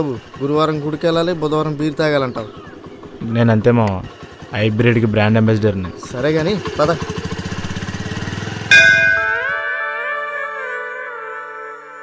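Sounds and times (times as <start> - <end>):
scooter engine idling: 0.0 - 9.7
bright musical chime: 8.7 - 10.2.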